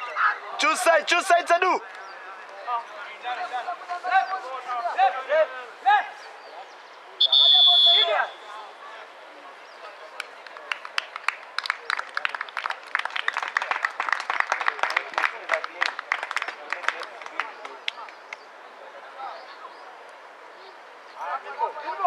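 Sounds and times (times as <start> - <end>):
referee's whistle blast: 7.2 - 8.4.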